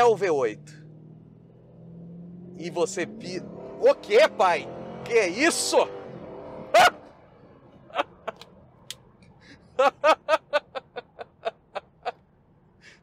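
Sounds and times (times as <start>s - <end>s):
engine and road noise: 0.0s - 13.0s
man laughing: 6.7s - 7.0s, 7.8s - 8.4s, 9.6s - 12.2s.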